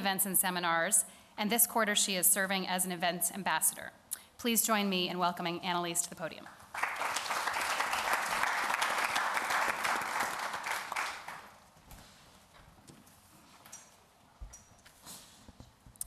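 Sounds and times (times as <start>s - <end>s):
audience applauding: 6.6s - 11.6s.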